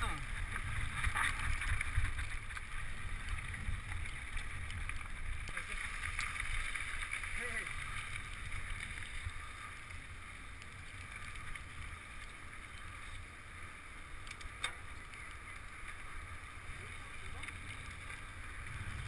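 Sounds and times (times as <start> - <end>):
wind buffeting microphone: 0.0 - 5.6
bike tyres rolling on dirt: 0.0 - 19.0.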